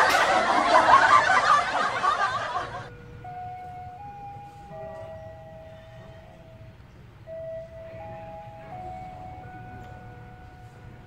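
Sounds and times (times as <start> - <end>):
sustained electronic tones melody: 0.0 - 11.0.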